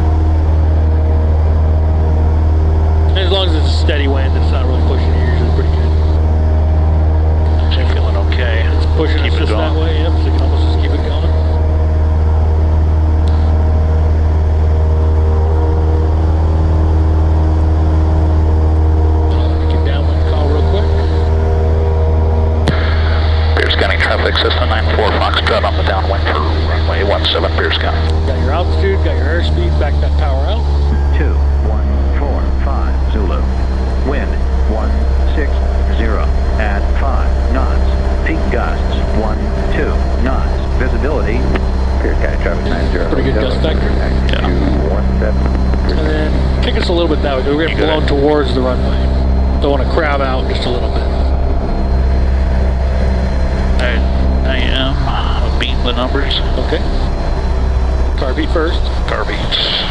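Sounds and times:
propeller plane engine droning: 0.0 - 59.9.

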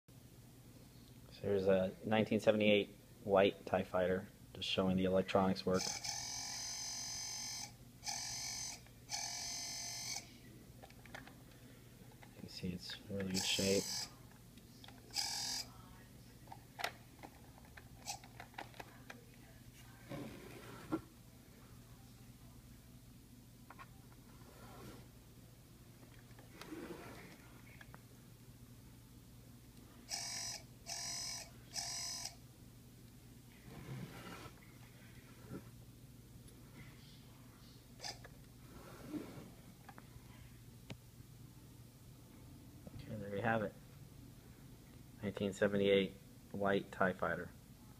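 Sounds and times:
buzzy electronic toy sound: 5.8 - 10.3, 13.4 - 14.1, 15.1 - 15.7, 30.1 - 32.4
short rubbing noise: 33.6 - 34.6.

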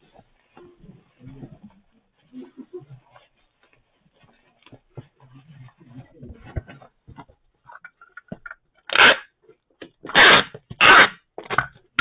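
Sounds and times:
packing tape screeching off dispenser: 8.9 - 9.3, 10.0 - 11.6.

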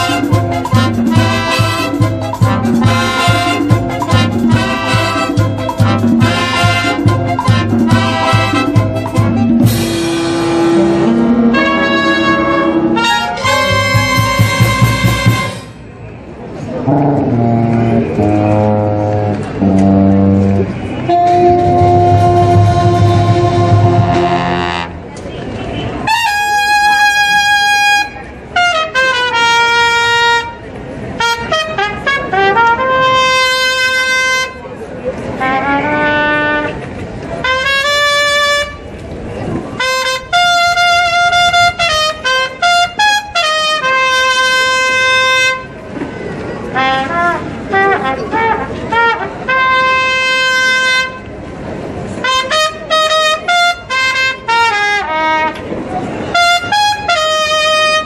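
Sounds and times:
brass band chord: 0.0 - 15.8, 16.9 - 25.0, 46.8 - 51.3, 52.2 - 55.6
solo brass held notes: 0.0 - 15.8, 16.9 - 25.0.

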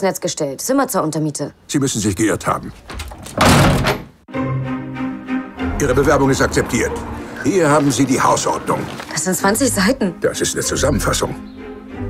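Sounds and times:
heavy wooden door slamming: 2.8 - 4.2.

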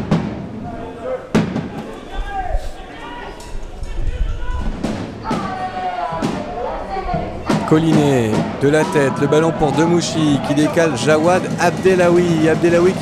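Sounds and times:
background music: 7.6 - 13.0.

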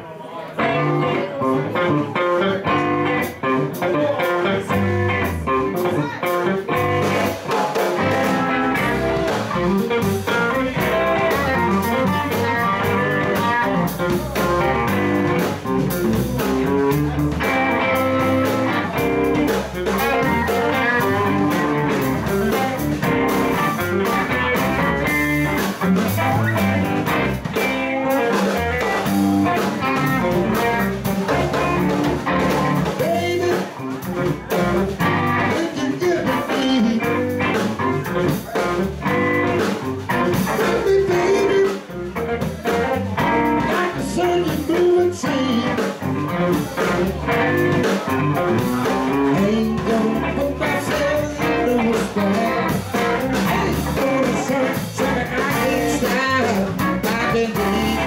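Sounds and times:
electric guitar: 0.5 - 58.0
live blues band playing: 0.5 - 58.0.

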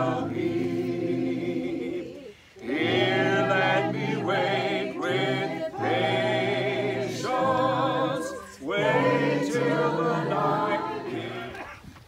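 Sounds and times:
group singing a hymn: 0.0 - 11.8.

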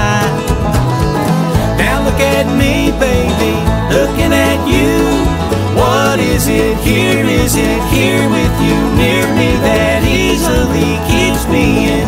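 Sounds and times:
bluegrass string band playing: 0.0 - 12.0.

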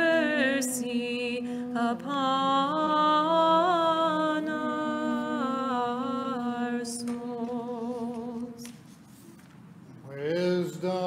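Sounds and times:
voices chanting held note: 0.0 - 8.7.

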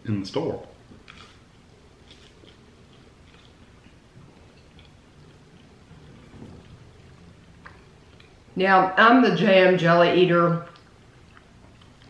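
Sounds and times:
low room rumble: 0.0 - 12.0
faint chewing of cracker: 1.0 - 8.4, 10.7 - 12.0.

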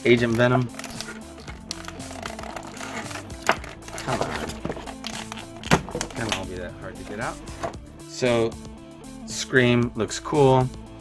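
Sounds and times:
music with held low notes: 0.0 - 11.0
plastic packaging clicks: 0.2 - 6.5.

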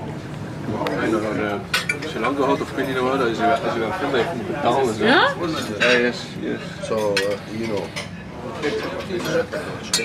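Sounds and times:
cutlery clinking on plates: 5.5 - 6.1, 6.9 - 10.0.

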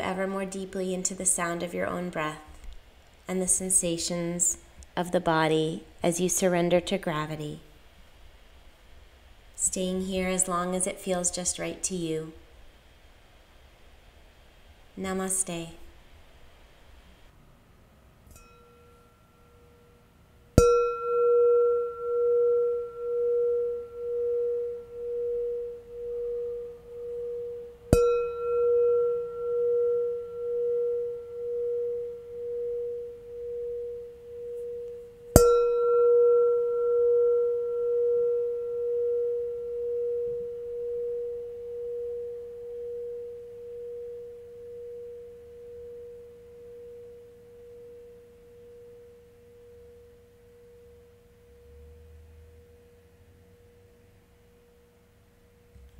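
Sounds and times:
singing bowl ringing: 18.3 - 51.9
singing bowl strike: 20.6 - 51.7.

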